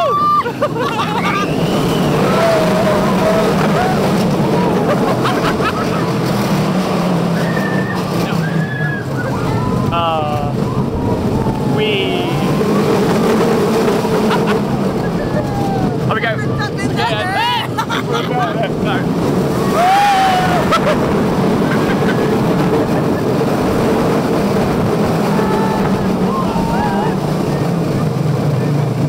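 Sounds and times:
riders shrieking: 0:00.0 - 0:16.1, 0:19.5 - 0:27.7
roller coaster rumbling on track: 0:00.0 - 0:29.0
wind on microphone: 0:00.0 - 0:29.0.

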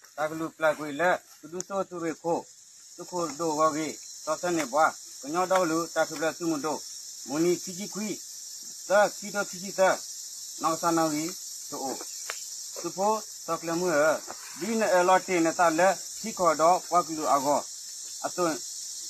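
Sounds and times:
insect chorus: 0:00.0 - 0:19.0.

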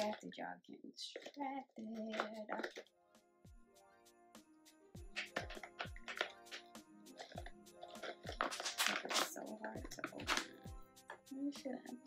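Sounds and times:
background music with steady beat: 0:01.0 - 0:12.0
crinkling plastic package: 0:02.0 - 0:02.9, 0:05.2 - 0:10.6.

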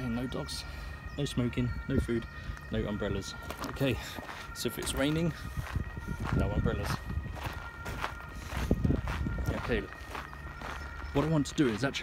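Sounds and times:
footsteps of person walking: 0:00.0 - 0:12.0.

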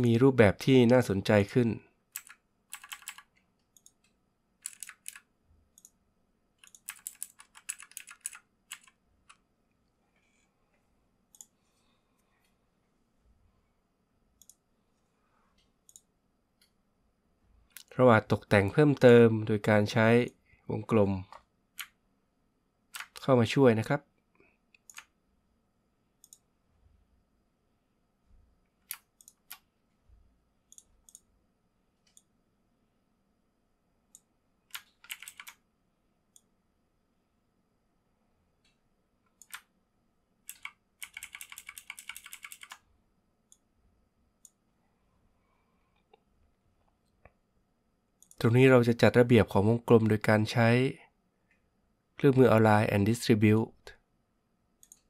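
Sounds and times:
computer keyboard typing: 0:02.1 - 0:06.0, 0:06.6 - 0:09.4, 0:22.9 - 0:23.2, 0:24.8 - 0:25.1, 0:34.7 - 0:35.6, 0:39.4 - 0:39.7, 0:40.4 - 0:42.8.

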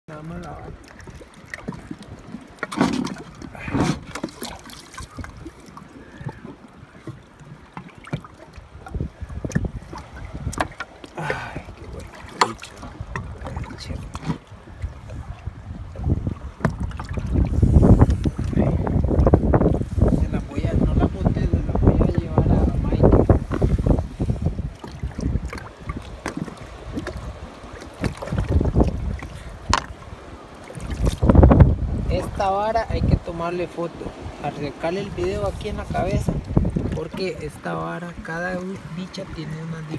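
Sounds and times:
wind and water rumble: 0:00.0 - 0:39.9.

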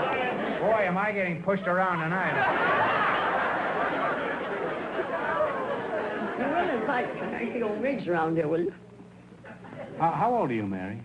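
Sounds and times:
audience laughter: 0:00.0 - 0:00.9, 0:02.1 - 0:07.8, 0:09.4 - 0:10.0.

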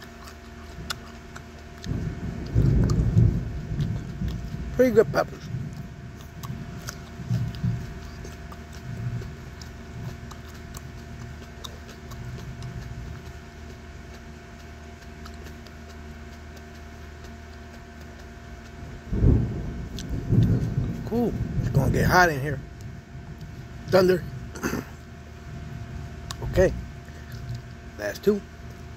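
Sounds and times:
low room hum: 0:00.0 - 0:28.9
deep rumble of thunder: 0:01.8 - 0:10.2, 0:19.1 - 0:24.6.

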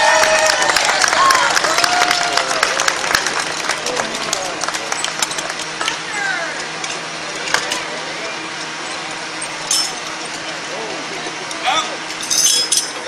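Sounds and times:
people calling out: 0:06.0 - 0:06.8, 0:10.6 - 0:12.4
metal tool clicks and clanks: 0:09.4 - 0:10.5, 0:12.1 - 0:13.0.

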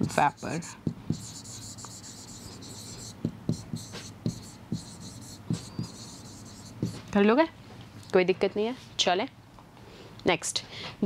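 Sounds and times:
writing on a board: 0:00.0 - 0:07.1.

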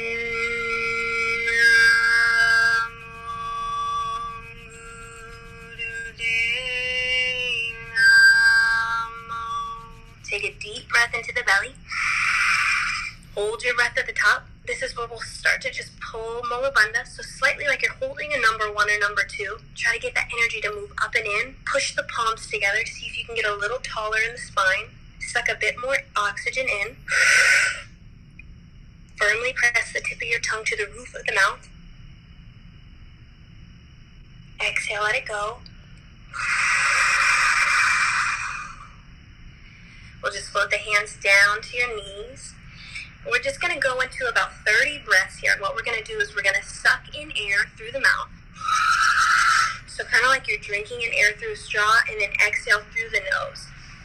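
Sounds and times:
woman talking: 0:05.8 - 0:12.0, 0:13.0 - 0:27.1, 0:29.2 - 0:31.7, 0:34.6 - 0:35.7, 0:40.2 - 0:48.8, 0:49.5 - 0:53.8
loud breath into microphone: 0:39.6 - 0:40.2.

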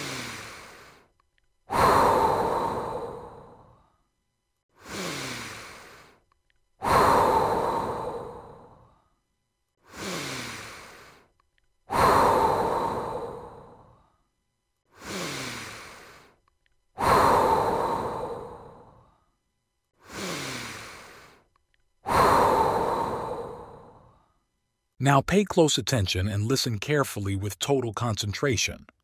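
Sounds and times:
slow deep breathing: 0:00.0 - 0:24.6.

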